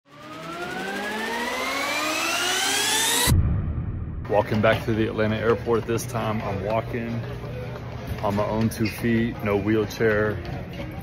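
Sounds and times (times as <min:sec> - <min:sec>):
rising sound effect riser: 0:00.1 - 0:05.4.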